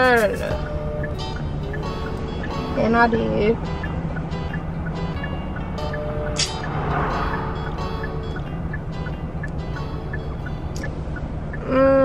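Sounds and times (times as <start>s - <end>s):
music on car stereo: 0.0s - 11.8s
engine and road hum: 0.0s - 12.0s.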